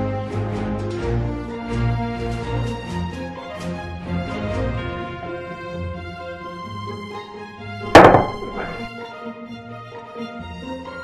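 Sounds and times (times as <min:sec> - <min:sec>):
instrumental background music: 0:00.0 - 0:11.0
plate set down on table: 0:08.0 - 0:08.9
small knock: 0:08.0 - 0:08.9.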